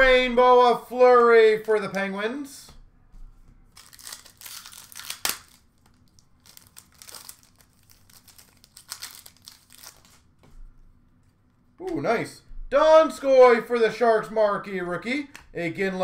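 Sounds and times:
cards rustling: 3.7 - 10.3
wrappers crinkling: 3.7 - 10.4.

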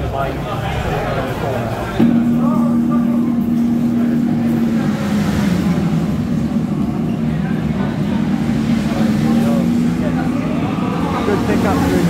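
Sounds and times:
indistinct voices: 0.0 - 12.0
motorcycle engine through tv speaker: 0.7 - 12.0.

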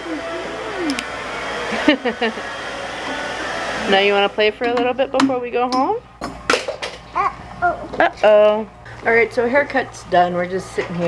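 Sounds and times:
hair dryer blowing: 0.0 - 5.4
voices: 7.1 - 11.0.

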